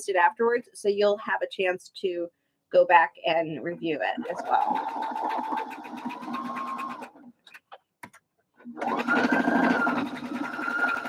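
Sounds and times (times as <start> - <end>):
sewing machine stitching: 4.2 - 7.7, 8.6 - 11.0.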